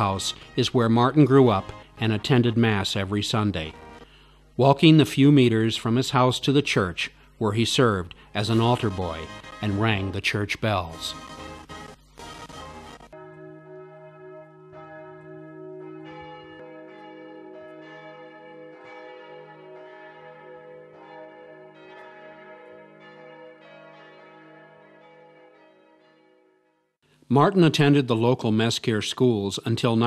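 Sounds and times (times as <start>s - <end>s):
church bells ringing: 0.0s - 4.1s, 4.8s - 26.9s.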